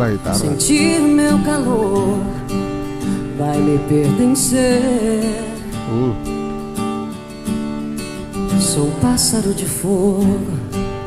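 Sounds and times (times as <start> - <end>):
acoustic guitar strumming: 0.0 - 11.0
woman singing: 0.4 - 5.8, 8.5 - 11.0.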